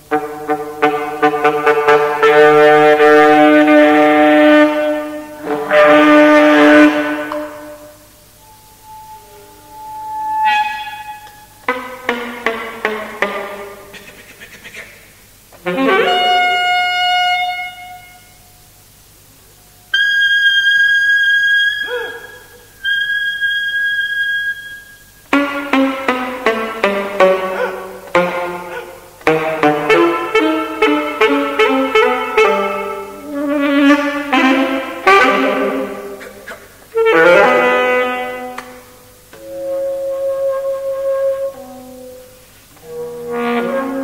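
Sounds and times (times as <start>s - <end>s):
solo saxophone playing: 0.0s - 13.9s, 15.5s - 18.7s, 19.5s - 44.0s.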